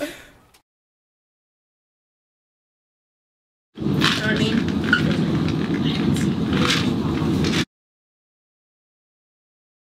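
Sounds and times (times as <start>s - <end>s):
steady low rumble: 3.8s - 7.7s.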